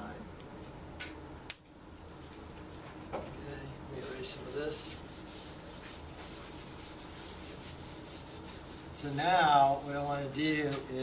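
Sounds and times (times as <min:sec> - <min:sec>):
eraser rubbing on whiteboard: 0:04.0 - 0:10.2.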